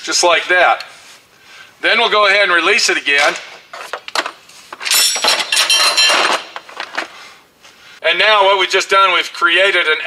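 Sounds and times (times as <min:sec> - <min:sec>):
metal tubing clinking and rattling: 0:03.8 - 0:07.1.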